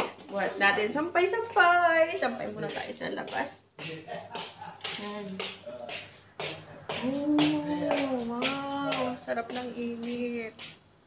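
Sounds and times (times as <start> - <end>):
woman making wordless sounds: 0.3 - 3.6, 6.9 - 10.8.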